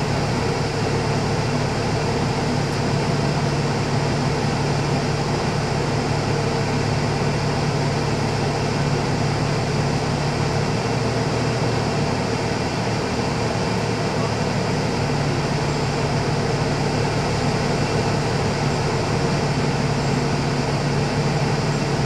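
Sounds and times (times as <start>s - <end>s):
road and cabin noise: 0.0s - 22.0s
vehicle engine droning in cab: 0.0s - 22.0s.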